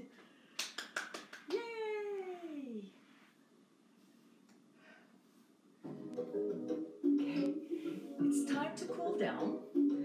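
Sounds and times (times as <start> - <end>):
hand claps: 0.6 - 1.7.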